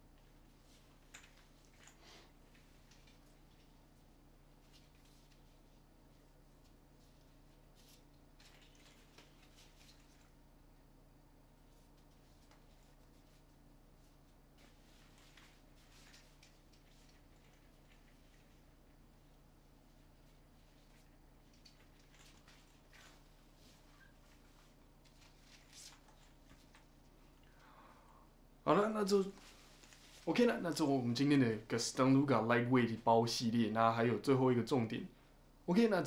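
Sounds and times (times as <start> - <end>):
low steady hum: 0.0 - 36.0.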